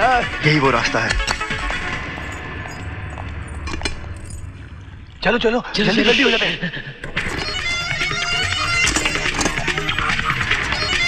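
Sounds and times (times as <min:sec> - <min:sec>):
sharp metallic clinks: 0:01.2 - 0:04.6.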